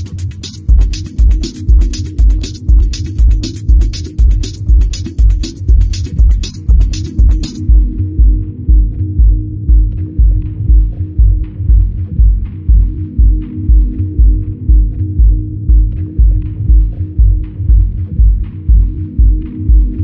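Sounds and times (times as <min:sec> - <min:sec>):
deep house music: 0:00.0 - 0:20.0.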